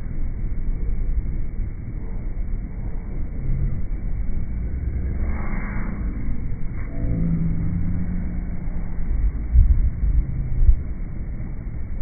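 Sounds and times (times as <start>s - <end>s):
muffled boat rumble: 0.0s - 12.0s.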